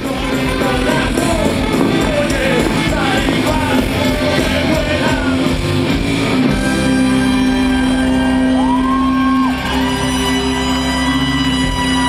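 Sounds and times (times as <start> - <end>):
trumpet: 0.0 - 5.5, 6.6 - 12.0
drums: 0.0 - 12.0
guitars: 0.0 - 12.0
saxophone: 0.0 - 12.0.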